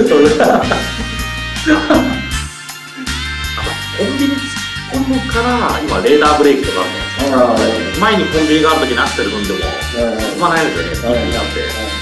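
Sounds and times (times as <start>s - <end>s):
background music with low bass: 0.0s - 12.0s
man talking: 3.6s - 12.0s.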